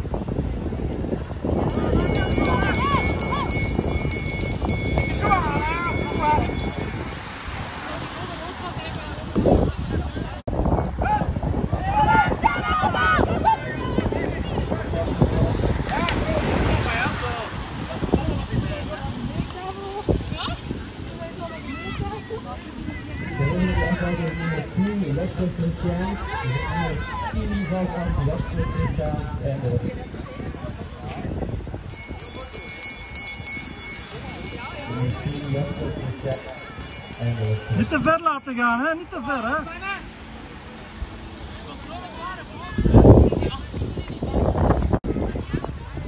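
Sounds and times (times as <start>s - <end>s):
wind rumble on microphone: 0.0s - 38.2s, 42.2s - 46.0s
crowd noise: 0.0s - 46.0s
outdoor background noise: 0.0s - 46.0s.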